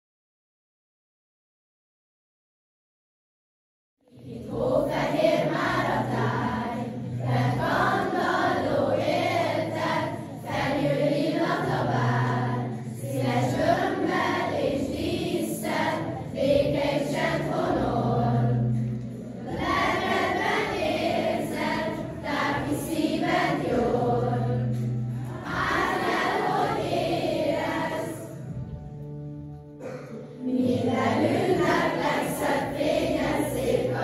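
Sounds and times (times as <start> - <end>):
children's choir singing: 4.1 - 28.8, 29.8 - 34.0.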